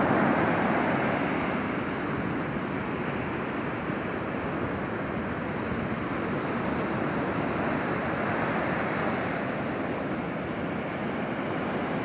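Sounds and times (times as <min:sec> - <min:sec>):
ocean waves breaking on beach: 0:00.0 - 0:12.0.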